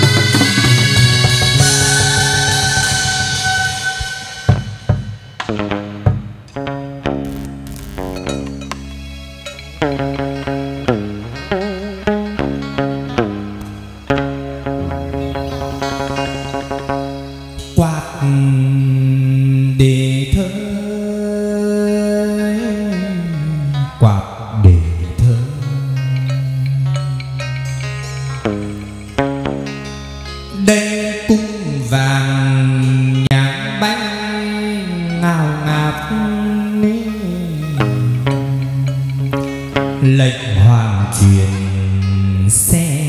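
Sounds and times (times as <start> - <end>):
sharp percussion strikes: 0.0 - 10.5
moon lute: 0.0 - 43.0
man singing with sliding notes: 14.7 - 28.5, 30.5 - 43.0.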